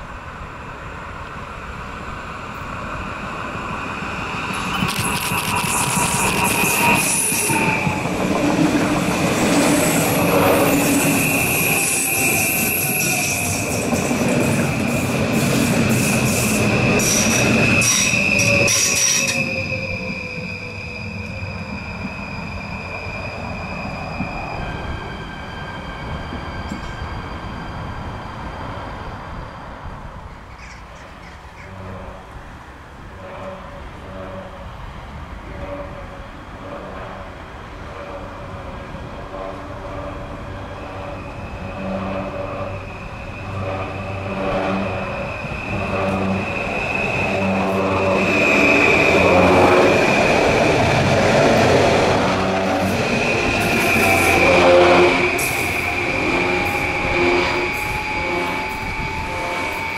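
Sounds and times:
train wheels squealing: 3.8 - 29.7, 40.0 - 59.9.

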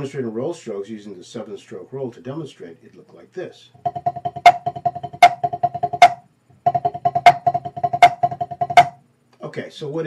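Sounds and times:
drumsticks on practice pad: 3.9 - 9.0.

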